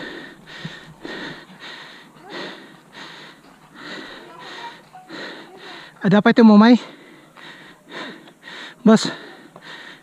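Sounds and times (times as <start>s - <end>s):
person panting hard: 0.0s - 6.0s, 6.8s - 10.0s.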